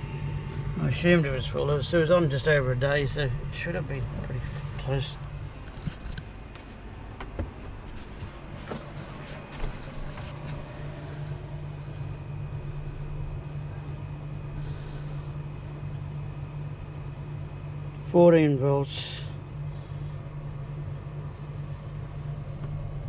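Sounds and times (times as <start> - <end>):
low hum: 0.0 - 23.0
light knocks and clicks: 5.6 - 10.6.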